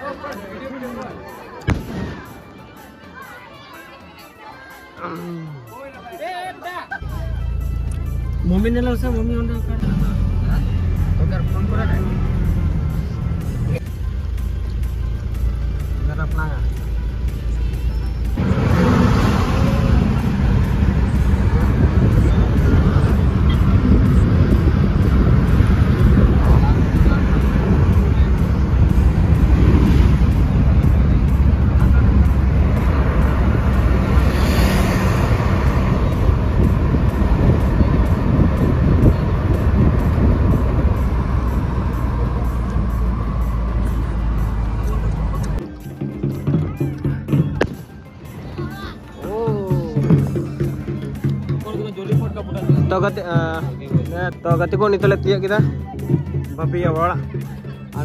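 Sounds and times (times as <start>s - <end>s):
passing traffic: 0.0s - 58.0s
car engine and road rumble: 7.0s - 49.4s.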